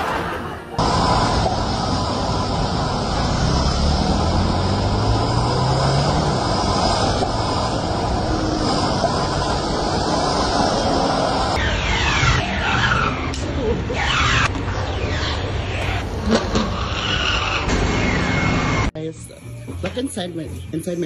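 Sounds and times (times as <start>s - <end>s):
vehicle engine hum: 0.0s - 21.0s
traffic on wet road: 0.8s - 14.7s.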